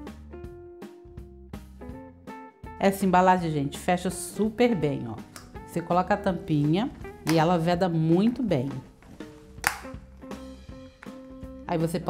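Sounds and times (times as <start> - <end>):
background music: 0.0 - 12.0
plastic lid snapping shut: 9.6 - 10.0.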